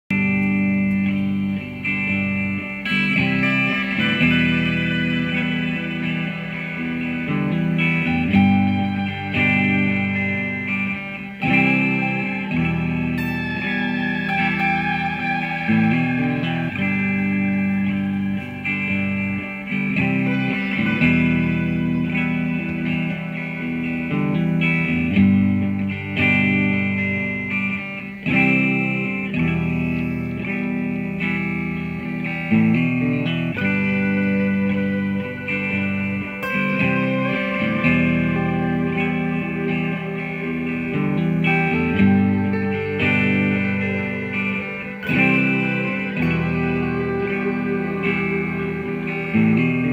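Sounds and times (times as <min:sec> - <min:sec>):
electric guitar lead line: 0:00.0 - 0:49.9
looped electric guitar chords: 0:00.0 - 0:49.9.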